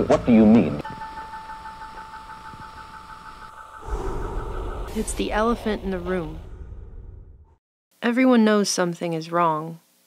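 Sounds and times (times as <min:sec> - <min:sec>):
steady electronic hum tone: 0:00.8 - 0:06.4
low rumble: 0:03.6 - 0:07.6
higher warbling tone: 0:03.8 - 0:07.0.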